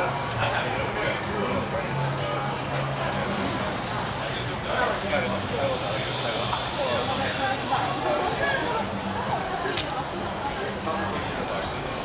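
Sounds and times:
background music: 0.0 - 12.0
people talking: 0.0 - 12.0.

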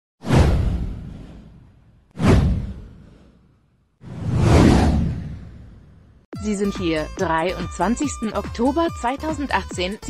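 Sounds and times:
whoosh with deep boom: 0.2 - 6.3.

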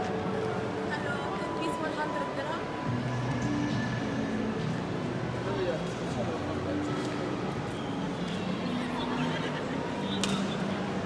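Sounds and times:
crowd talking: 5.2 - 11.0.

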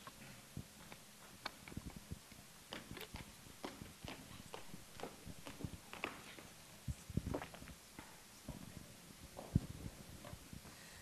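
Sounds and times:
footsteps on hard floor: 3.6 - 8.7.

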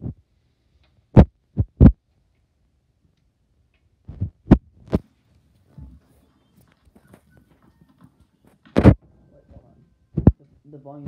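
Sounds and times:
short thumps: 8.6 - 9.1, 10.1 - 10.4.

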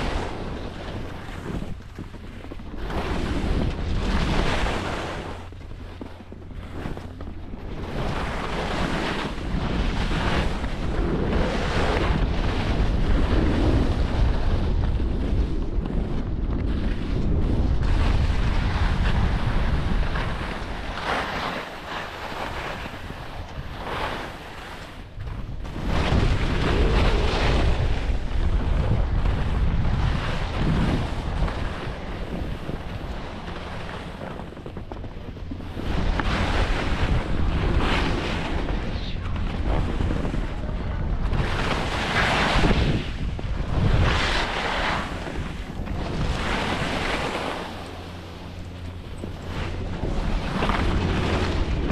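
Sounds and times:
skis scraping across snow: 0.0 - 48.5, 49.1 - 51.9
wind rumbling on microphone: 0.0 - 51.9.

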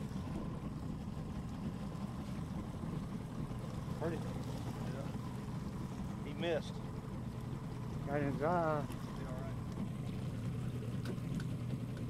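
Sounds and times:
boat motor running: 0.0 - 12.0
water noise: 0.0 - 12.0.

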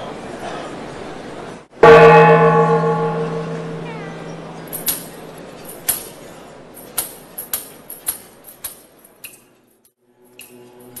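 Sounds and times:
large metal bell stroke: 1.8 - 5.8.

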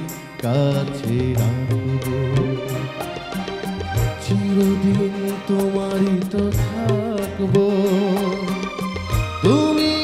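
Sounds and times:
man singing: 0.0 - 10.0
small band playing: 0.0 - 10.0.

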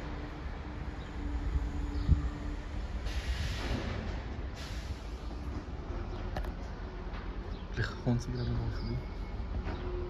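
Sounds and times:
rushing hiss: 2.9 - 5.3.

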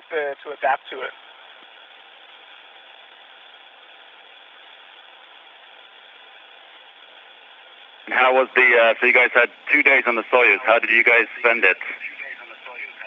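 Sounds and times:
radio downlink hiss: 0.0 - 13.0
person speaking over radio: 8.1 - 13.0.

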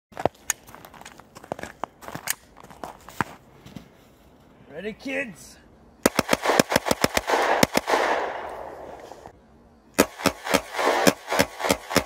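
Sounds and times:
rapid pistol shots: 6.0 - 8.9, 10.0 - 12.0.

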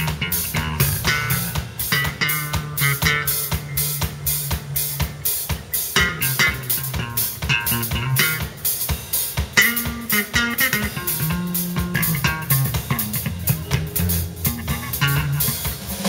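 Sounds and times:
bass guitar: 0.0 - 16.0
drum kit beat: 0.0 - 16.0
electric guitar melody: 0.0 - 16.0.

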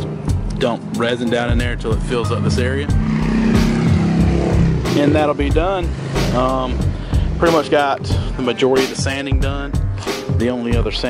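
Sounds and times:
engine humming: 0.0 - 8.4.

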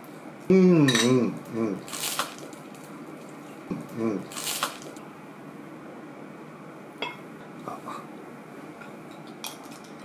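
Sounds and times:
man humming in approval: 0.5 - 1.8.

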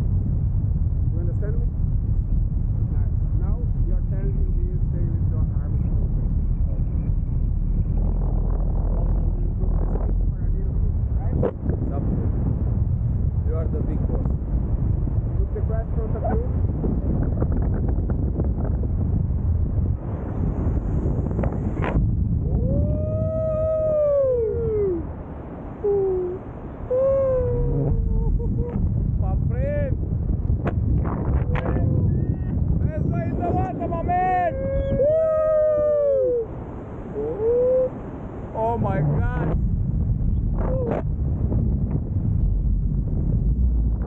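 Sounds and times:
wind buffeting microphone: 0.0 - 44.0
people whooping: 22.6 - 25.0, 25.9 - 28.6, 34.4 - 36.5, 37.1 - 38.0.

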